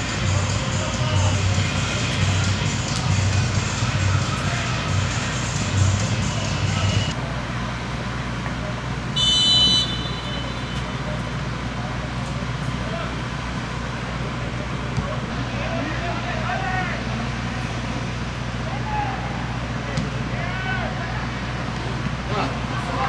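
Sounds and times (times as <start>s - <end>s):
music: 0.0s - 7.1s
stadium ambience with low hum: 0.0s - 23.0s
referee's whistle blast: 9.2s - 10.9s.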